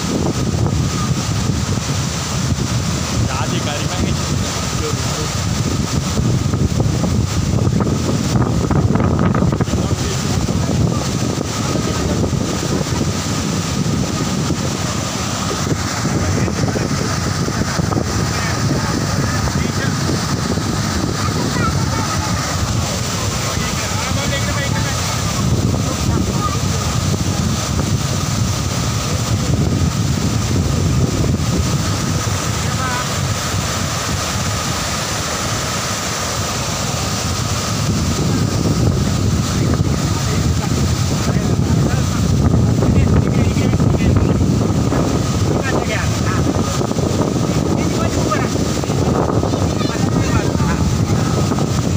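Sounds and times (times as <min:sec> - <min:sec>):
roar of rushing floodwater: 0:00.0 - 0:51.9
wind on microphone: 0:00.0 - 0:51.9.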